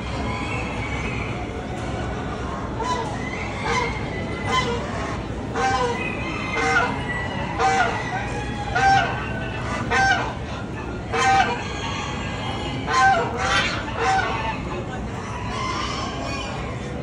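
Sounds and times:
din of poultry: 0.0s - 17.0s
waterfowl honking: 2.8s - 10.5s, 11.1s - 11.6s, 12.8s - 14.6s.

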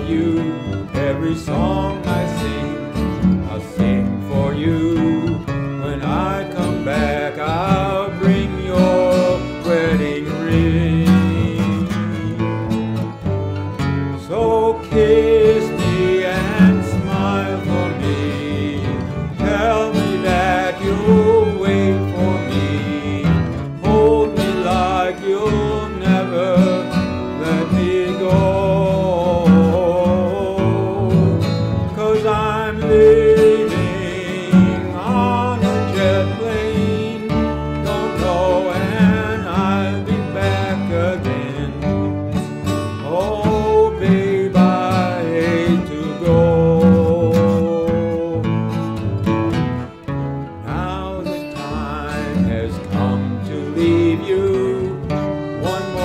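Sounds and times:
fiddle melody: 0.0s - 56.0s
plucked upright bass: 0.0s - 56.0s
strummed acoustic guitar: 0.0s - 56.0s.

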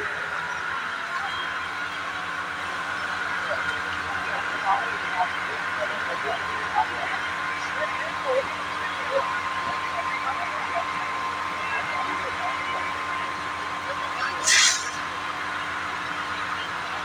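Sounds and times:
brief loud hiss: 14.4s - 15.0s
fire hose jet rushing: 14.4s - 15.0s.

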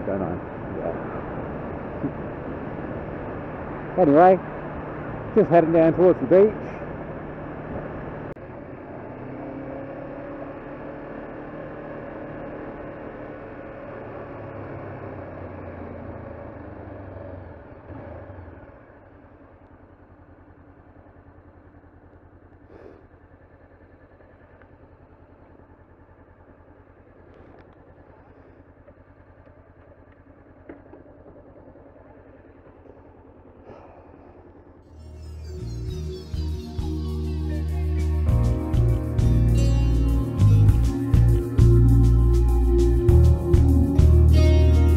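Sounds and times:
motorcycle engine running: 0.0s - 44.9s.

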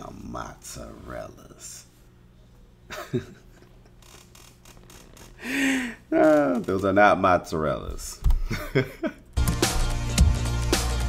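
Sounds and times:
low steady hum: 0.0s - 9.4s
man laughing: 2.9s - 4.0s, 8.4s - 9.4s.

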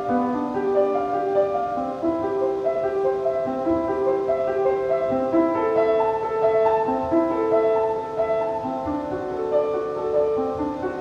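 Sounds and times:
upright piano playing: 0.0s - 11.0s.

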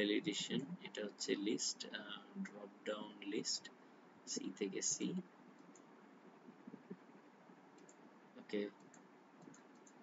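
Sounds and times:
computer mouse clicks: 5.6s - 5.9s, 7.7s - 8.1s, 8.8s - 10.0s.

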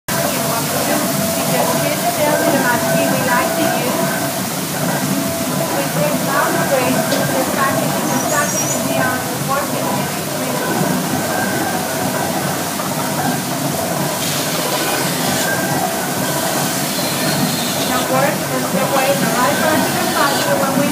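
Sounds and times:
machinery running noise: 0.0s - 20.9s
high whining tones: 0.1s - 9.6s, 10.8s - 20.9s
water splashing from wheel: 0.1s - 20.9s.

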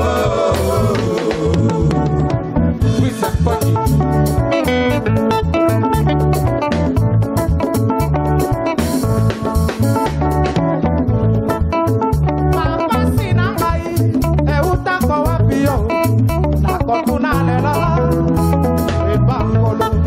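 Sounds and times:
person singing: 0.0s - 4.0s, 12.5s - 18.5s
bass guitar: 0.0s - 20.0s
drums: 0.0s - 20.0s
electric guitar lines: 0.0s - 20.0s.

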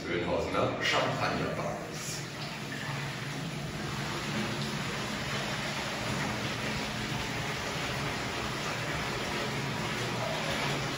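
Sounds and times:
water fizzing: 0.0s - 10.9s
water rushing into bathtub: 0.0s - 10.9s.

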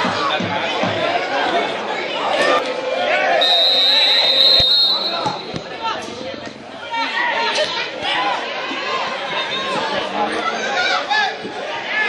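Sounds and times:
voices calling out: 0.9s - 12.0s
referee's whistle blast: 3.4s - 5.6s.

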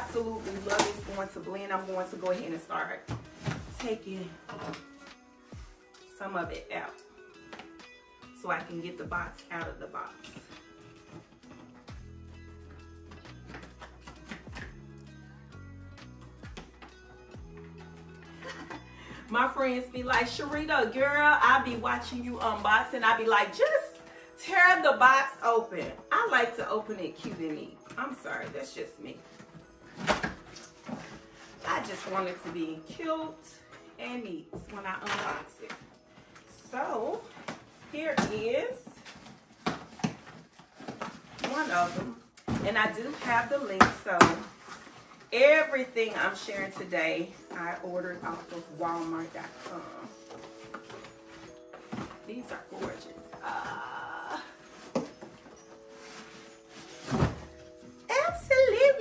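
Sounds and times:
faint background music: 0.0s - 59.0s.

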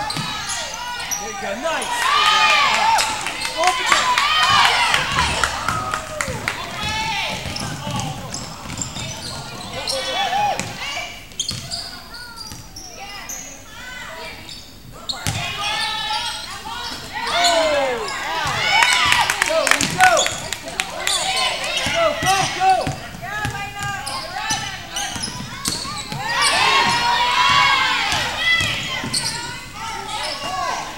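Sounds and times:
sneakers squeaking on hardwood: 0.0s - 1.6s, 3.3s - 13.6s, 19.8s - 30.9s
players' voices: 0.0s - 30.9s
basketball bouncing: 3.9s - 9.7s, 21.8s - 29.6s.

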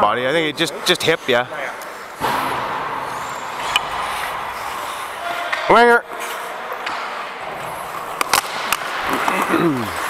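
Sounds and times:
skate blades scraping ice: 3.1s - 6.6s, 7.5s - 10.0s.

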